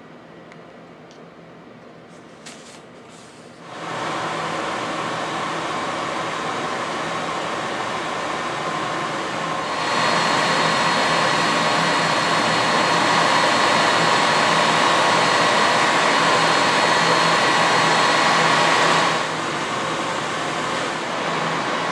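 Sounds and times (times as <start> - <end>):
machine whirring with faint whine: 0.0 - 21.9.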